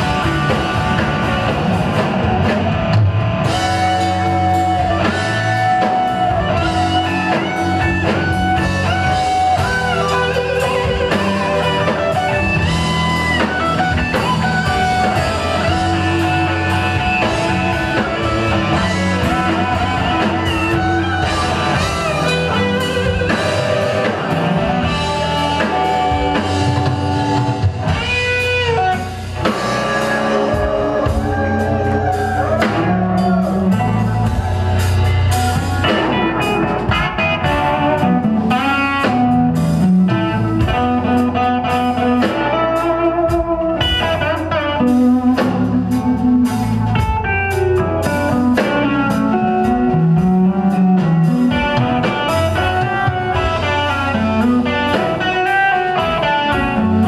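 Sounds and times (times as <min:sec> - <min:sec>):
bass guitar: 0:00.0 - 0:57.0
drum kit: 0:00.0 - 0:57.0
electric guitar lead lines: 0:00.0 - 0:57.0.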